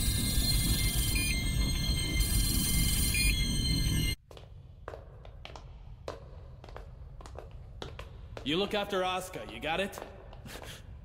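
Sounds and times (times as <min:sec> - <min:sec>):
high electronic tones: 0:00.0 - 0:04.2.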